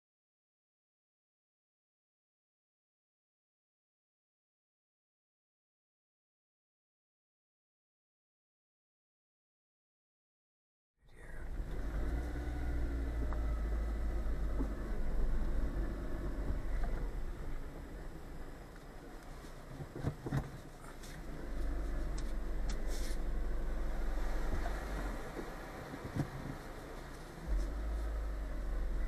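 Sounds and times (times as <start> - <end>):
road and engine rumble: 11.0 - 29.0.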